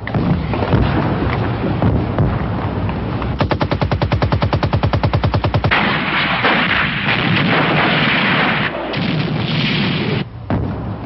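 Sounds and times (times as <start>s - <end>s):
machine-gun fire: 3.4s - 10.7s.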